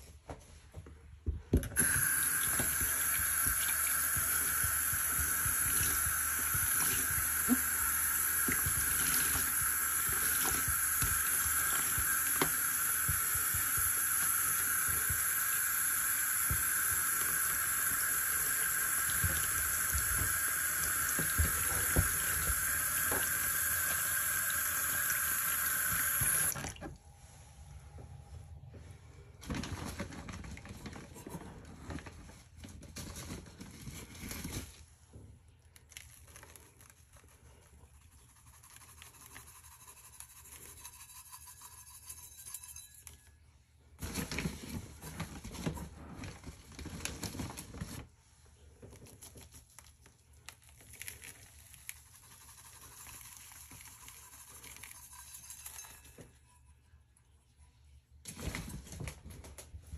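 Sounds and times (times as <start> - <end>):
tap water stream on sponge: 1.5 - 27.0.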